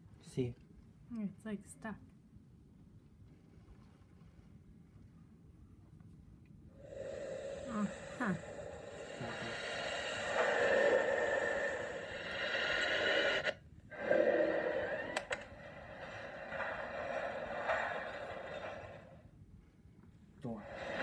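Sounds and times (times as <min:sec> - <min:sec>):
click: 0:15.0 - 0:15.5.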